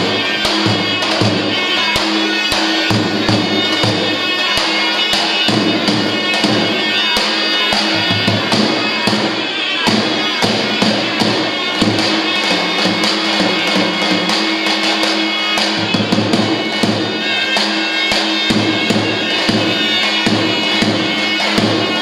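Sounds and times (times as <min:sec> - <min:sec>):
large drum steady beat: 0:00.0 - 0:22.0
reedy folk wind melody: 0:00.0 - 0:22.0.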